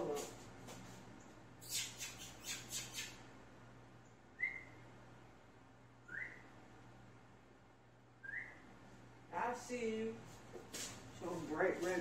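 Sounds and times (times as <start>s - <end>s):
small bird chirping: 1.2s - 3.3s, 4.0s - 4.8s.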